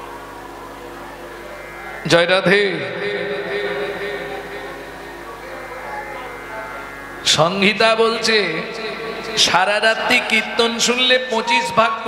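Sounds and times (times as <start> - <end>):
drone of held musical tones: 0.0 - 12.0.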